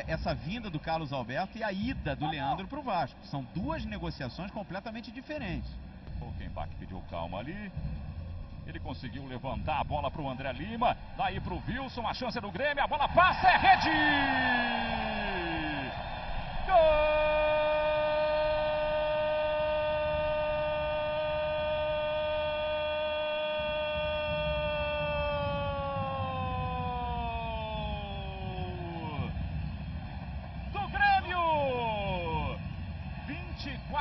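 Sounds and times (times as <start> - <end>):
stadium crowd noise: 0.0 - 34.0
commentator shouting goal: 11.4 - 16.0, 16.7 - 29.4, 30.8 - 32.6.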